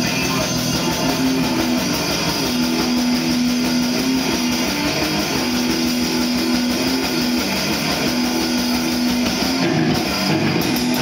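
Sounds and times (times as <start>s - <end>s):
bass guitar: 0.0s - 11.0s
electric guitar chords: 0.0s - 11.0s
steady drumming: 0.0s - 11.0s.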